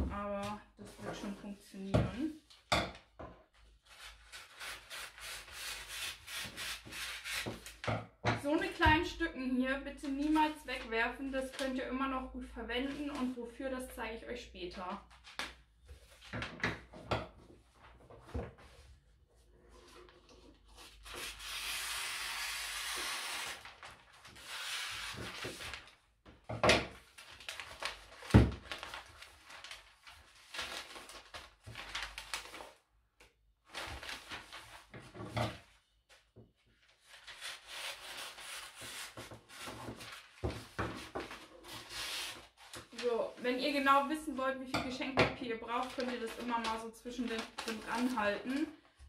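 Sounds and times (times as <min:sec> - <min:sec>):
wrapping paper rustling: 0:15.0 - 0:16.6, 0:17.6 - 0:26.1, 0:27.0 - 0:32.9, 0:33.6 - 0:43.9, 0:45.6 - 0:49.0.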